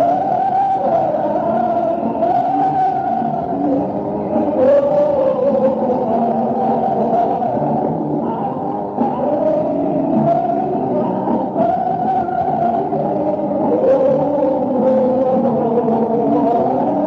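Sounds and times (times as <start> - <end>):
distorted live concert music: 0.0 - 17.0.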